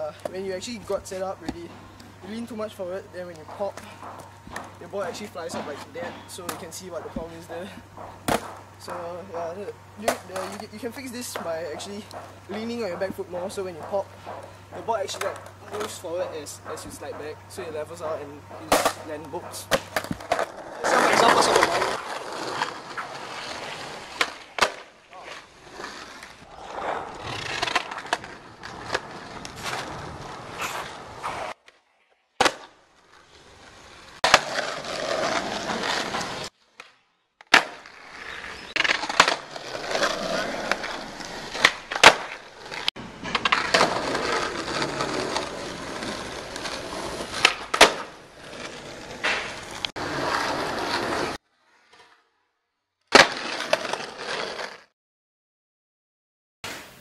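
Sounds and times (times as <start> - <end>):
skateboard wheels rolling on asphalt: 0.0 - 52.4, 53.1 - 54.9
skateboard pops and clacks: 8.0 - 8.7, 18.6 - 22.0, 24.2 - 25.4, 32.4 - 32.8, 34.2 - 34.7, 36.8 - 37.9, 38.8 - 40.9, 41.5 - 45.5, 46.6 - 48.1, 49.2 - 49.9, 53.1 - 54.0.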